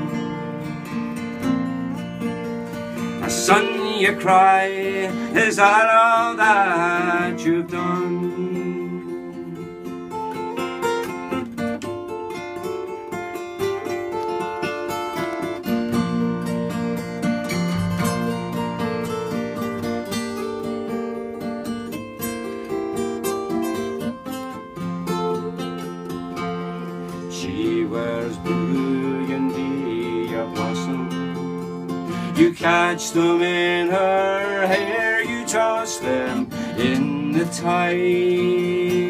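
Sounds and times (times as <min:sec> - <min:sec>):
acoustic guitars playing folk music: 0:00.0 - 0:39.0.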